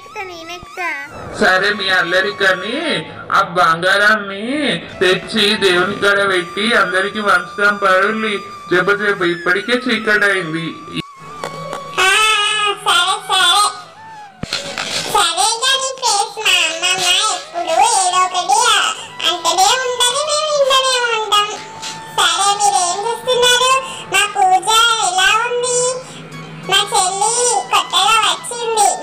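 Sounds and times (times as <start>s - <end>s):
music: 0.0s - 29.0s
high-pitched voice singing: 26.7s - 29.0s.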